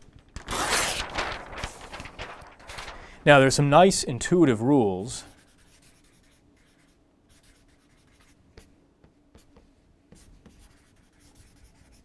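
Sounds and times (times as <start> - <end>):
marker pen scratching: 5.3 - 8.7, 9.4 - 12.0.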